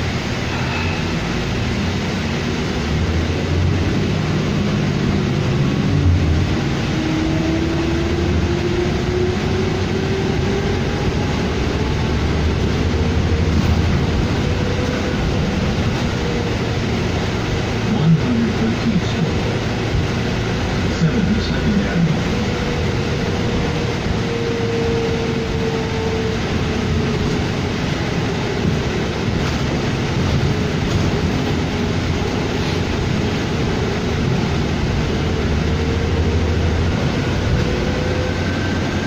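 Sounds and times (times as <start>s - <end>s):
bus engine and road noise: 0.0s - 39.0s
rising engine whine: 0.0s - 39.0s.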